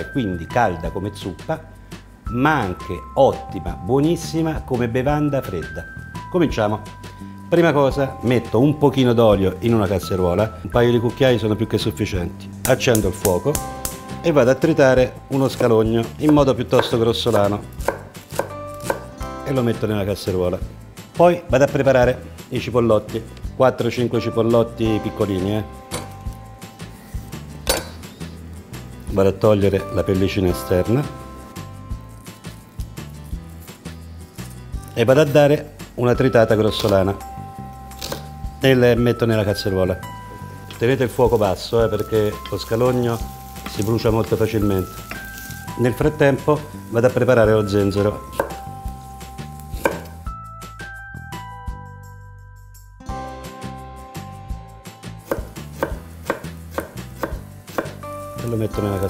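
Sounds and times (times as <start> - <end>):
soft background music: 0.0 - 59.0
knife slicing ginger: 15.6 - 19.2, 25.9 - 28.2, 36.6 - 37.1, 37.9 - 38.4, 41.1 - 50.2, 55.1 - 59.0
knife knocking on cutting board: 49.8 - 50.1.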